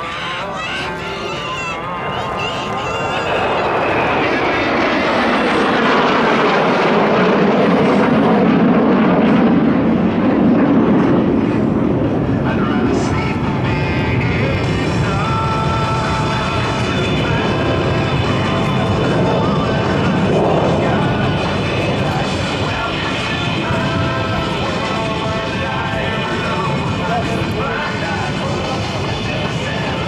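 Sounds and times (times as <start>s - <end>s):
jet aircraft passing overhead: 0.0s - 30.0s.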